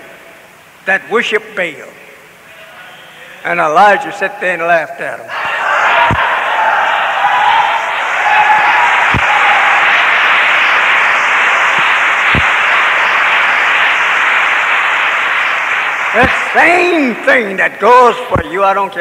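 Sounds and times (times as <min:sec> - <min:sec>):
audience applauding: 0:05.5 - 0:17.6
voices: 0:15.9 - 0:19.0.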